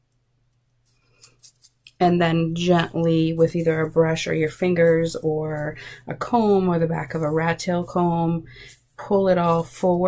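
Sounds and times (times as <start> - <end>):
fingers rustling on a wig: 0.8 - 10.0.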